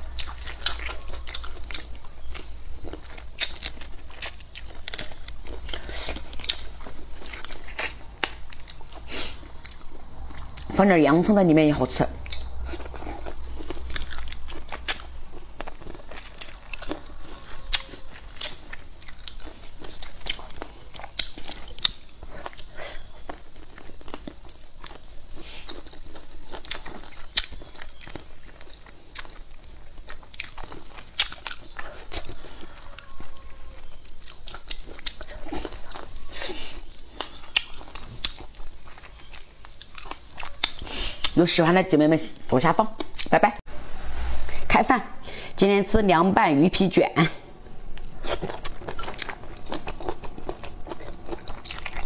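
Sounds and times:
crunchy biting: 0.0 - 10.8, 12.2 - 41.4, 47.6 - 52.0
wet chewing: 0.0 - 10.9, 12.2 - 41.6, 47.3 - 52.0.

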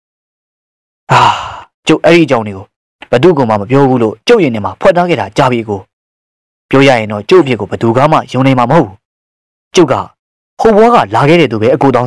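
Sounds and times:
heavy breathy sigh: 1.1 - 1.8.

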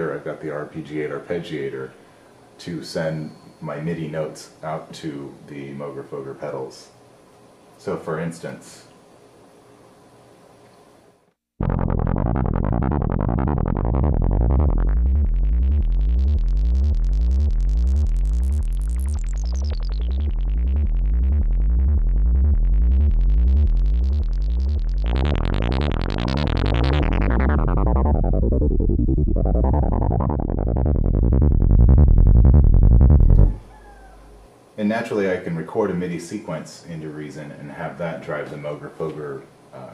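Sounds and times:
analog synth arpeggiated bass line: 11.6 - 33.7.

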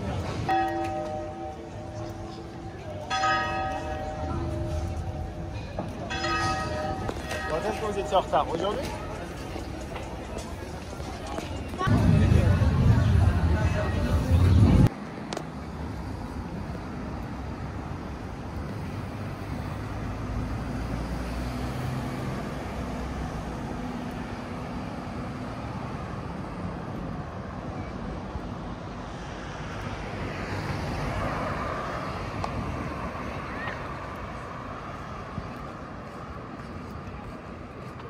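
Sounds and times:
cars passing: 0.0 - 38.0.

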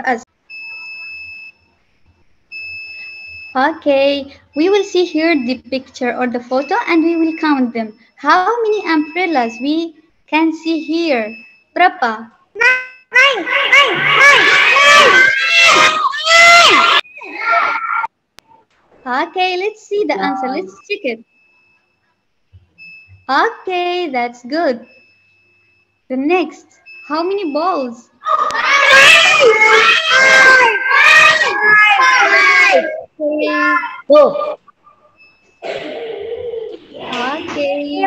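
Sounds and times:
children calling out loudly: 12.6 - 18.1, 28.2 - 34.6
quiet voices: 28.2 - 38.0.

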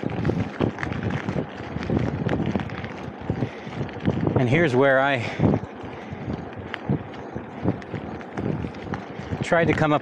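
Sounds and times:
bicycle frame rattling: 0.0 - 10.0
bicycle rolling over asphalt: 0.0 - 10.0
wind noise on microphone: 0.0 - 10.0.

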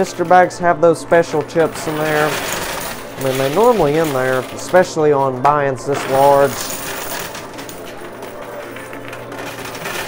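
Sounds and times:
coins clinking: 0.0 - 10.0
machine humming: 0.0 - 10.0.

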